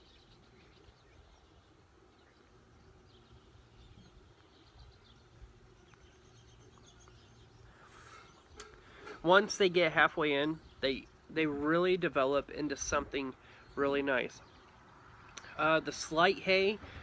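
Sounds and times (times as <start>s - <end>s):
bird chirps: 0.0s - 9.3s.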